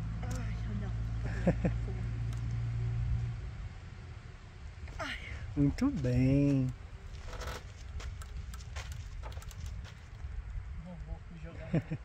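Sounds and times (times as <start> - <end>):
wind rumble on microphone: 2.2 - 12.0
rope swing clicks and knocks: 6.5 - 10.2.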